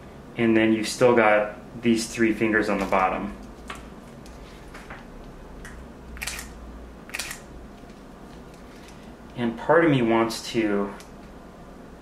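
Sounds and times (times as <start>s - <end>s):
camera shutter click and whir: 6.2s - 7.5s.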